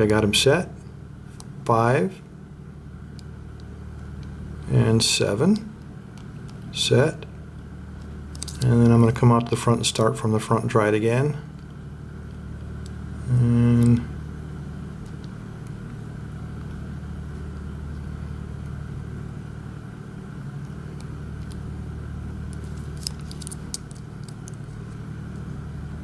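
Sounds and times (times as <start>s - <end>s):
generator engine drone: 0.0s - 26.0s.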